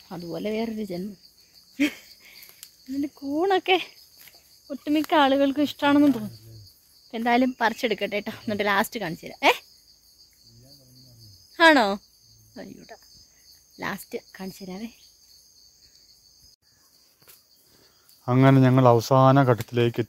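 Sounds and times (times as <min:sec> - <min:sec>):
woman speaking: 0:00.0 - 0:01.2, 0:02.9 - 0:04.0, 0:04.7 - 0:06.4, 0:07.1 - 0:09.6, 0:11.6 - 0:12.0, 0:12.6 - 0:13.0, 0:13.8 - 0:15.0
high-pitched insect drone: 0:00.0 - 0:20.0.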